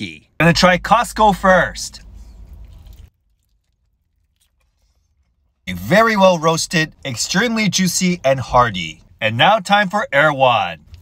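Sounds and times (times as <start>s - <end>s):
person speaking: 0.0s - 2.2s, 5.7s - 10.9s.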